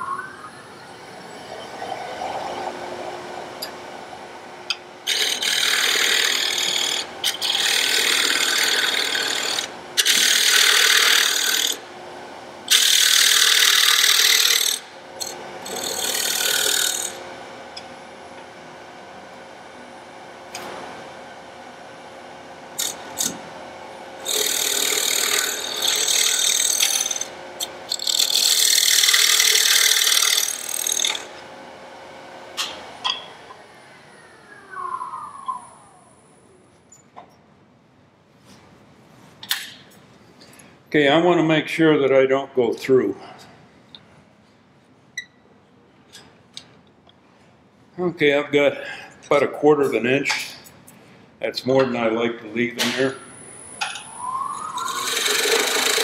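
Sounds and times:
lathe hum: 0:00.0 - 0:36.9, 0:53.3 - 0:56.0
turning tool scraping wood: 0:05.1 - 0:11.8, 0:24.3 - 0:31.3.

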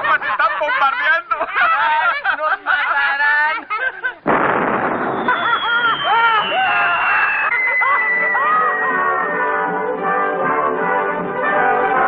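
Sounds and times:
loud explosion: 0:04.2 - 0:07.4.

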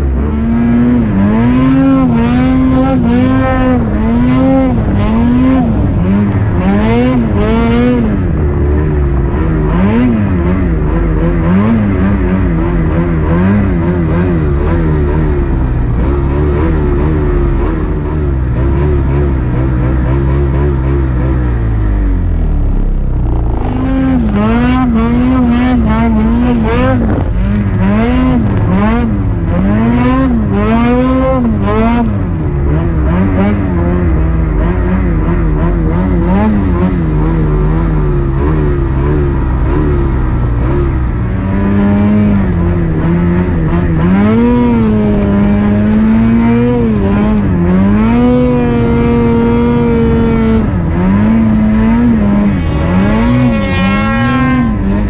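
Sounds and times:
snowmobile engine revving: 0:00.0 - 0:55.0.

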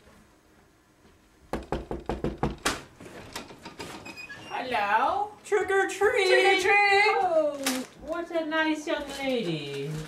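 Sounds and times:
knocking on a door: 0:01.5 - 0:02.9.

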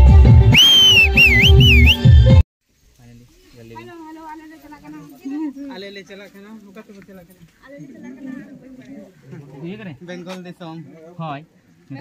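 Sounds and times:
dance music with drum beat: 0:00.0 - 0:02.4
loud high whistle: 0:00.5 - 0:02.2.

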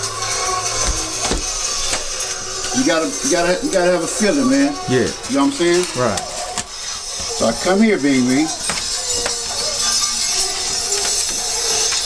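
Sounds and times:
plastic sheets crinkling: 0:00.0 - 0:12.0.

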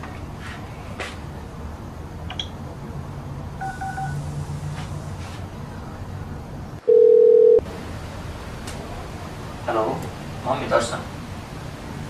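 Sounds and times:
phone ringback tone: 0:03.6 - 0:04.2, 0:06.8 - 0:07.6.

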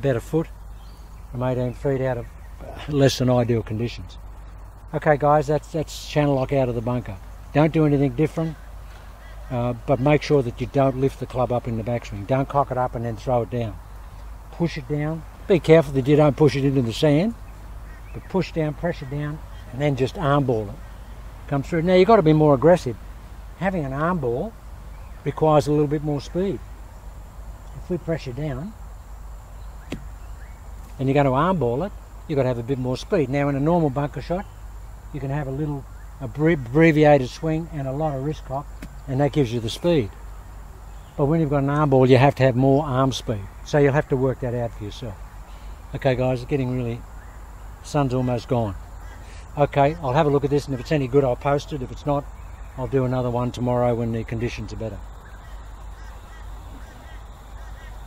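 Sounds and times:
short bird calls: 0:06.7 - 0:11.9, 0:13.6 - 0:34.8, 0:44.8 - 0:46.0, 0:46.9 - 0:53.0, 0:55.0 - 0:58.0.

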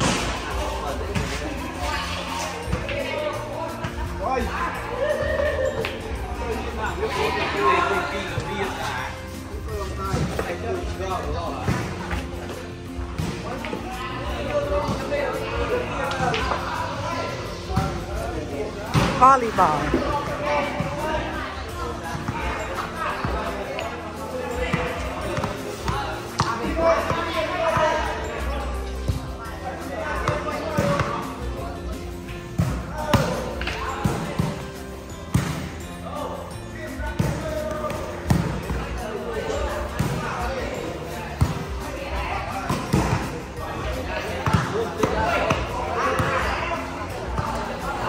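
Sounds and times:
crowd of voices chattering: 0:00.0 - 0:48.0
music: 0:00.0 - 0:48.0.

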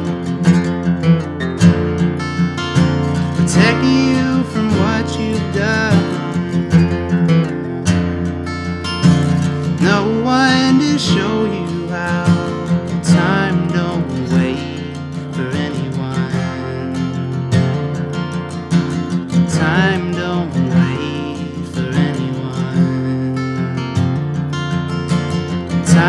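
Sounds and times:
man singing: 0:00.0 - 0:01.7, 0:03.2 - 0:18.2, 0:19.0 - 0:24.3, 0:25.6 - 0:26.0
acoustic guitar strumming: 0:00.0 - 0:26.0.

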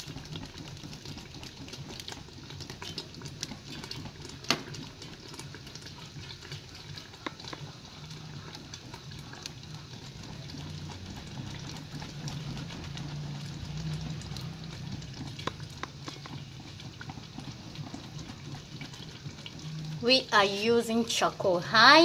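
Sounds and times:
stew pot crackling and clicking: 0:00.0 - 0:22.0.

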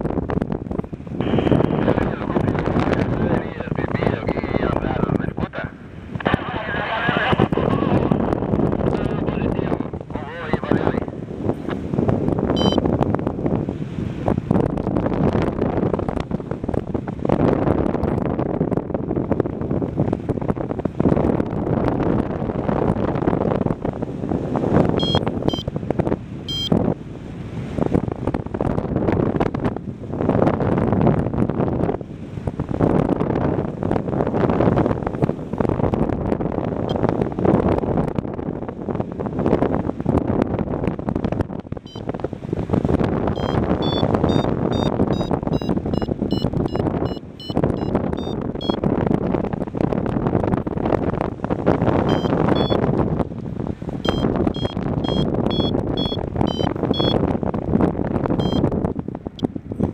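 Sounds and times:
wind buffeting microphone: 0:00.0 - 0:59.9
variometer high beeps: 0:01.2 - 0:01.7, 0:12.5 - 0:12.8, 0:25.0 - 0:25.7, 0:26.5 - 0:26.8, 0:43.3 - 0:48.8, 0:52.0 - 0:52.8, 0:54.0 - 0:57.2, 0:58.4 - 0:58.7.

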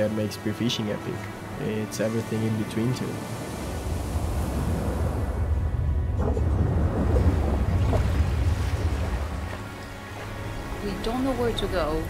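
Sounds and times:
waves: 0:00.0 - 0:12.0
wind rumble: 0:03.1 - 0:12.0.

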